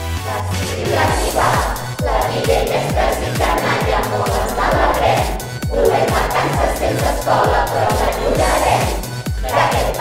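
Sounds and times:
group of voices singing loudly: 0.0 - 10.0
steady kick drum beat: 0.9 - 10.0.

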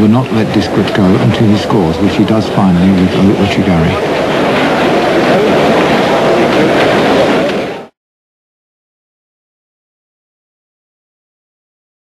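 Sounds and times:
arena crowd noise: 0.0 - 8.0.

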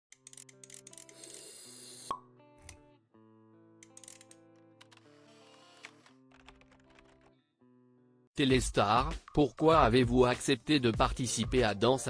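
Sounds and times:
background music with held notes: 0.2 - 12.0.

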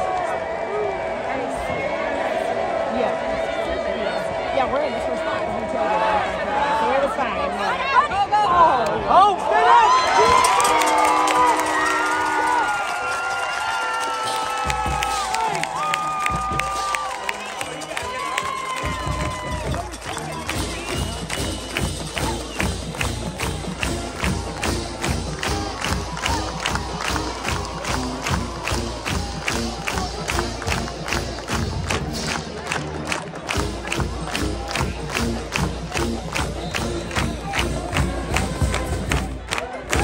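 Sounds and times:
crowd cheering: 0.0 - 40.0
marching band playing: 10.1 - 40.0
steady drum beat: 14.6 - 17.2, 18.7 - 40.0.

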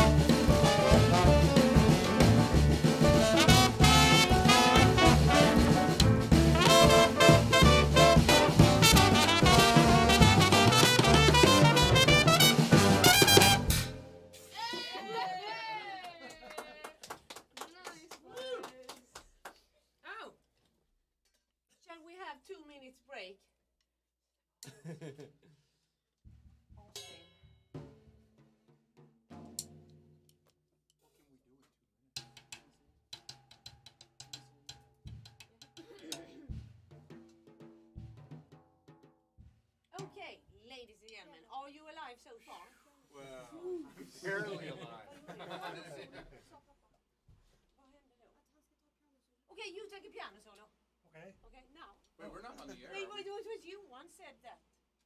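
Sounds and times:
swing jazz band playing: 0.0 - 14.3.

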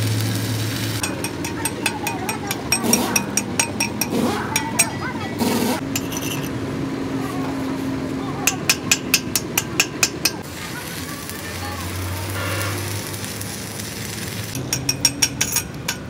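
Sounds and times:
welding arc crackle and hum: 0.0 - 4.0, 8.7 - 16.0
hammer tapping steel: 1.0 - 5.1, 5.8 - 6.5, 8.5 - 10.4, 14.6 - 16.0.

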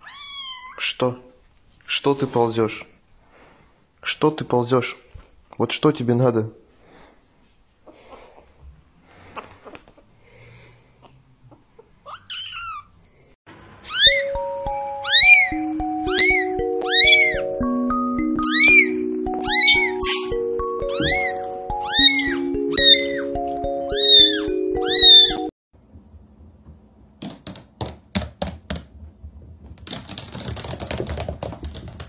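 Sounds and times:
kitten meowing: 0.0 - 0.8, 12.0 - 12.9, 13.8 - 14.3, 15.0 - 17.5, 18.4 - 25.5
background music with held notes: 14.0 - 25.5.

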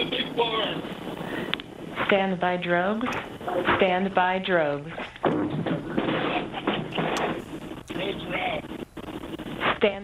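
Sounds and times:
indistinct voices over broadcast: 0.0 - 10.0.

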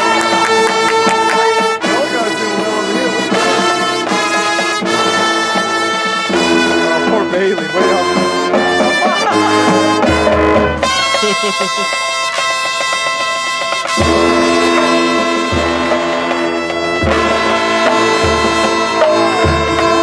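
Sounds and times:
brass chords: 0.0 - 20.0
percussion hits: 0.0 - 20.0.

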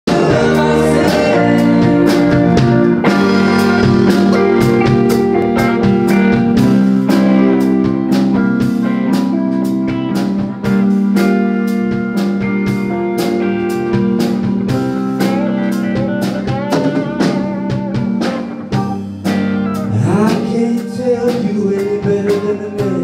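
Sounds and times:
guitar: 0.0 - 23.0
drum kit beat: 0.1 - 23.0.

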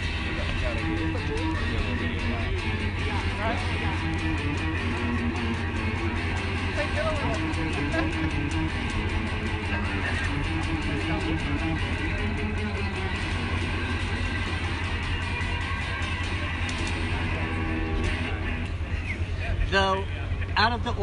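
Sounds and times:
electric guitar over low drone: 0.0 - 21.0.

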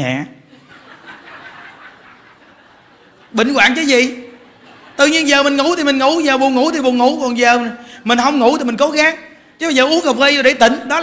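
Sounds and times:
audience chuckling: 0.5 - 3.4.

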